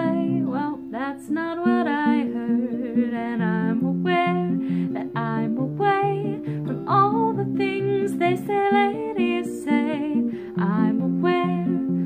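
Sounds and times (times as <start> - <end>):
acoustic guitar playing: 0.0 - 12.0.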